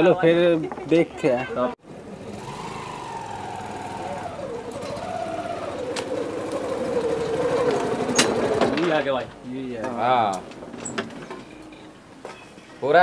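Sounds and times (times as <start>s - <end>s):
motorcycle engine running: 1.8s - 8.8s.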